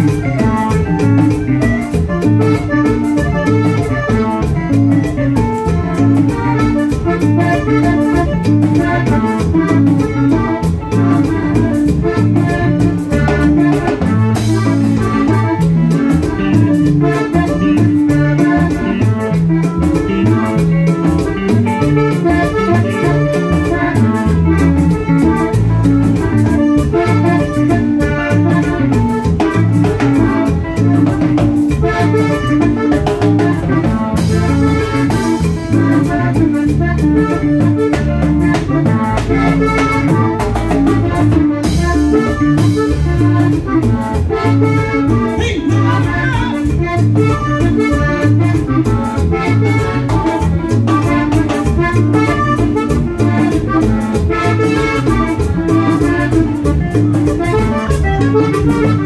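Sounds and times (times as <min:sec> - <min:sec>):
button accordion melody: 0:00.0 - 0:59.0
electric bass: 0:00.0 - 0:59.0
steady drum beat: 0:00.0 - 0:59.0.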